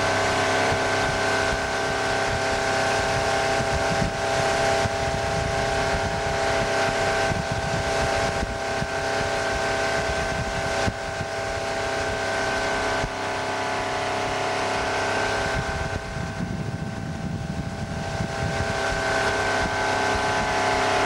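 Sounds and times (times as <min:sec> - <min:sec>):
boat engine drone: 0:00.0 - 0:21.0
water rushing: 0:00.0 - 0:21.0
wind: 0:00.0 - 0:21.0.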